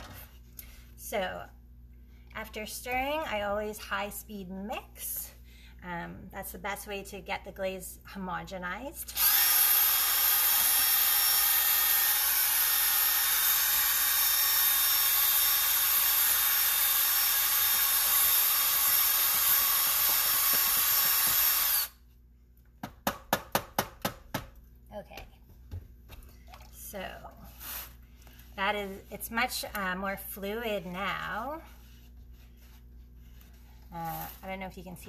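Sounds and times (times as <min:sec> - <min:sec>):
cordless drill running: 0:09.1 - 0:22.0.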